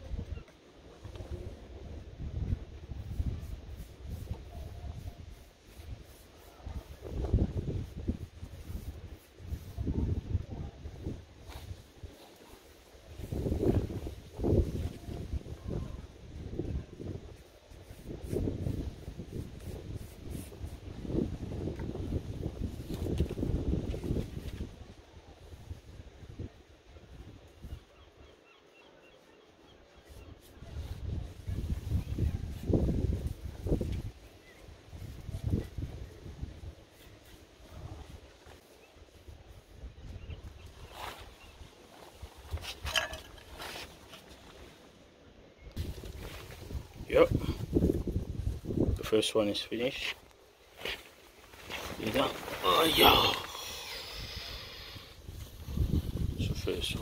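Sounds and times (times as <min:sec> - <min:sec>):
wind buffeting microphone: 0:01.0 - 0:12.1, 0:13.0 - 0:28.0, 0:30.2 - 0:36.9, 0:39.2 - 0:43.5, 0:45.6 - 0:49.1, 0:51.6 - 0:57.0.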